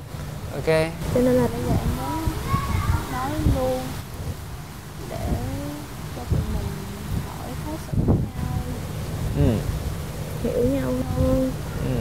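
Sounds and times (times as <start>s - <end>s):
low background rumble: 0.0s - 12.0s
woman speaking: 1.2s - 2.4s, 3.1s - 4.0s, 5.0s - 8.9s, 10.4s - 11.6s.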